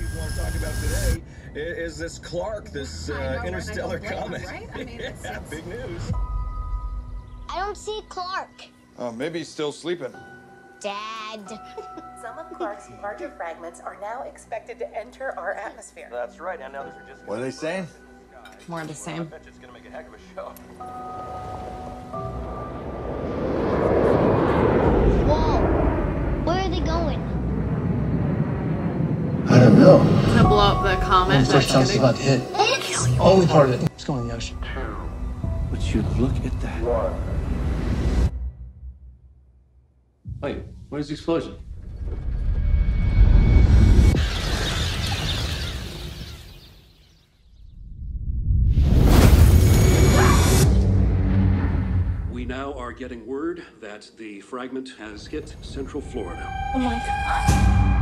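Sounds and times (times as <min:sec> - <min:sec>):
music: 0:03.4 - 0:23.2, 0:29.5 - 0:38.7, 0:55.8 - 0:58.0
trailer music: 0:04.8 - 0:08.9, 0:19.2 - 0:46.8, 0:47.8 - 0:53.0, 0:55.2 - 0:58.0
deep rumble: 0:22.1 - 0:46.5, 0:47.6 - 0:53.2, 0:55.2 - 0:58.0
loud speech: 0:29.5 - 0:33.9.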